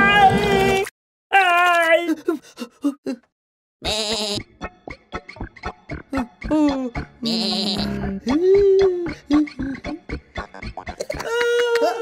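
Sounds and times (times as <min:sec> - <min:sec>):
cartoon voice bleating: 0:03.8 - 0:04.4, 0:06.2 - 0:08.9
background music with ticking beat: 0:03.9 - 0:11.8.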